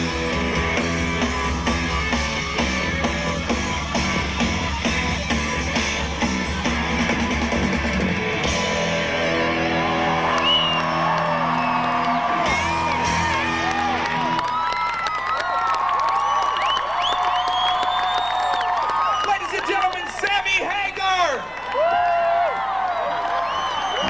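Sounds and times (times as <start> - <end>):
live rock band playing: 0.0 - 14.4
crowd cheering and whooping: 6.2 - 24.0.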